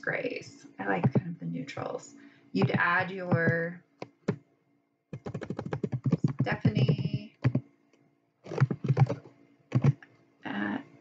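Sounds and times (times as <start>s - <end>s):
computer keyboard keystrokes: 5.2s - 7.6s, 8.5s - 10.0s.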